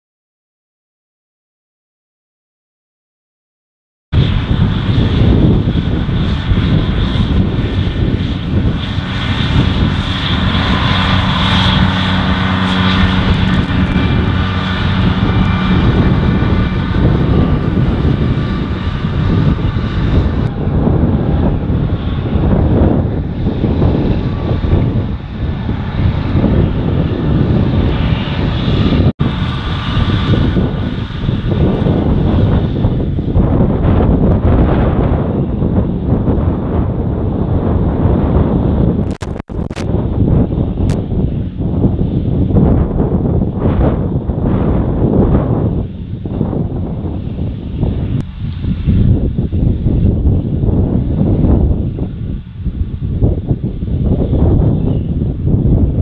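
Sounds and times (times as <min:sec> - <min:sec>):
rough gusting noise: 0:04.1 - 0:56.0
distant tractor engines droning: 0:04.2 - 0:34.6.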